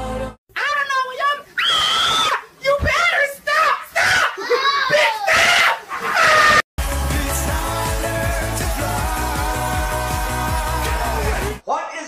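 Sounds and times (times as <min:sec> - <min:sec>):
person screaming: 0:01.2 - 0:02.5, 0:03.5 - 0:06.6.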